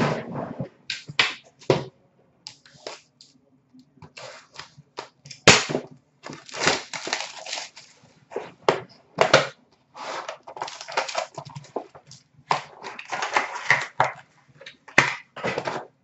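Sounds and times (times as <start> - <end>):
foil wrapper crinkling: 6.2 - 8.6, 10.0 - 15.9.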